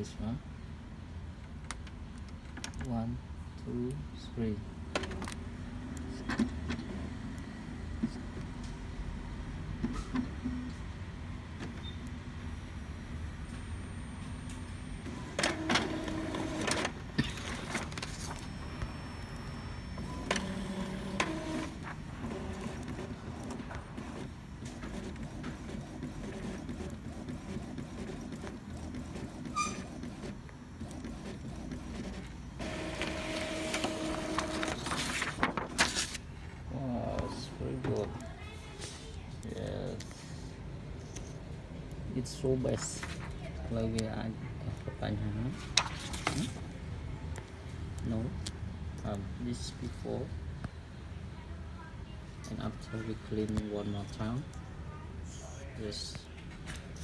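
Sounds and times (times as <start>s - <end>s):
printer motors whirring and clicking: 11.5s - 36.2s
paper feeding through printer: 15.0s - 19.2s, 19.8s - 36.2s.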